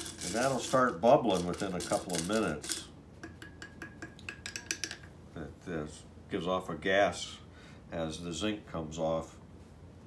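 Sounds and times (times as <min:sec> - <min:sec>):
wooden stick clinking in glass jar: 0:00.0 - 0:05.1.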